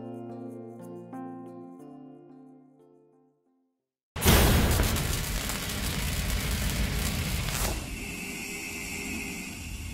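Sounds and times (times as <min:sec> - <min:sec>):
crackling rumble and hiss: 0:04.3 - 0:08.3.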